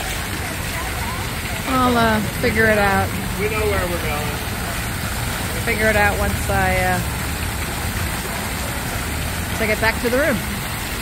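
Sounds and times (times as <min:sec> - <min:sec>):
fountain splashing into pool: 0:00.0 - 0:11.0.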